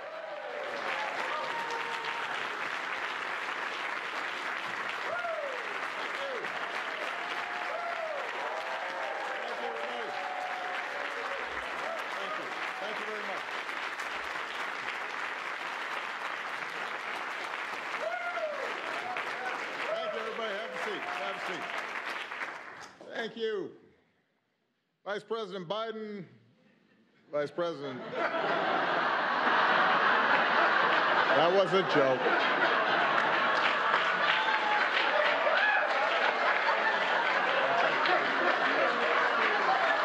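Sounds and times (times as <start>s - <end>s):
cheers and whoops: 0.0s - 2.6s, 5.0s - 13.2s, 17.9s - 21.9s, 33.9s - 40.0s
audience applauding: 0.0s - 23.1s, 28.4s - 40.0s.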